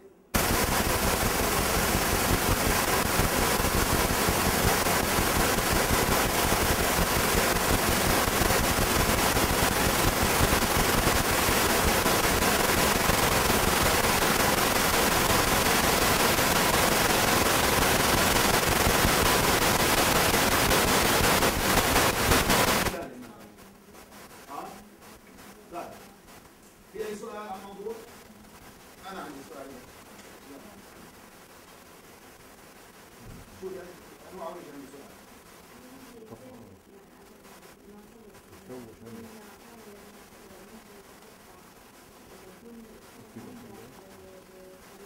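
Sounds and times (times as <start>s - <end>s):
crackling static noise: 0.0s - 45.0s.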